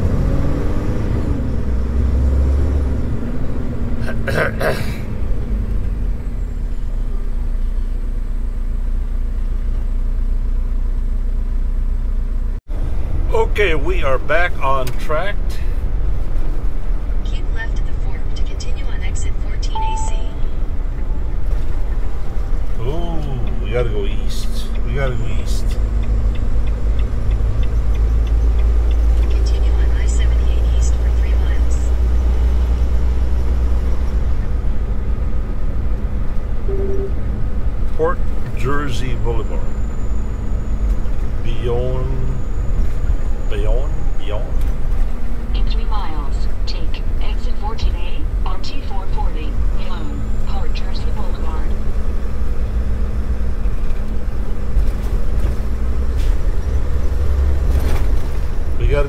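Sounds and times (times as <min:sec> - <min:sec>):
truck engine and road drone: 0:00.0 - 0:59.0.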